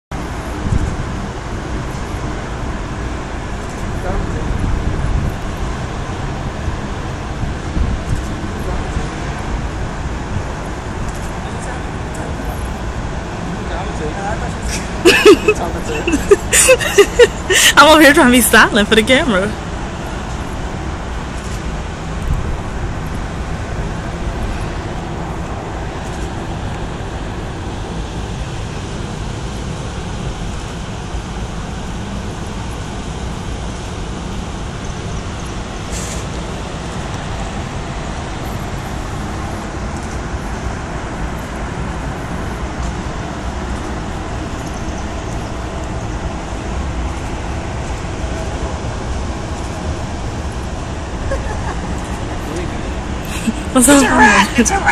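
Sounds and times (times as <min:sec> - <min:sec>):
street traffic rumble: 0:00.1 - 0:54.9.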